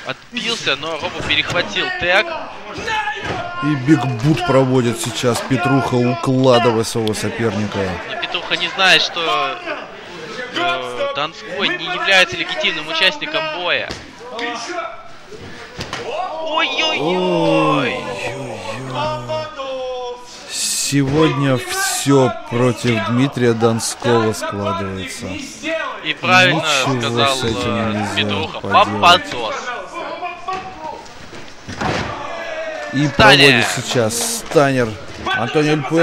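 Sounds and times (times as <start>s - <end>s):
low voices: 3.4s - 11.0s, 16.4s - 25.6s, 26.2s - 29.6s
brief voices: 16.8s - 19.6s.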